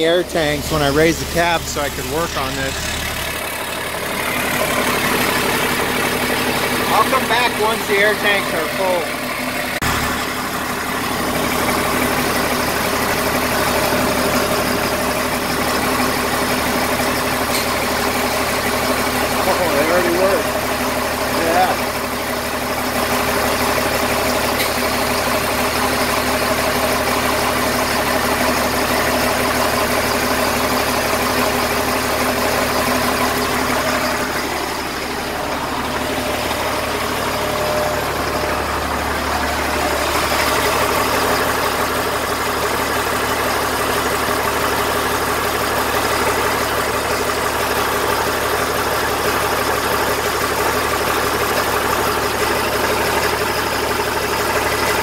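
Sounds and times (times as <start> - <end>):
air compressor running: 0.0 - 55.0
diesel truck engine idling: 0.0 - 55.0.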